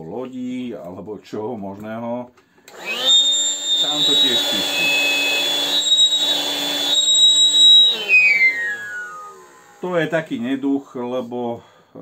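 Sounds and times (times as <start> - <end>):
air pump blower humming: 2.7 - 10.3
high-pitched hose whistle: 2.8 - 9.8.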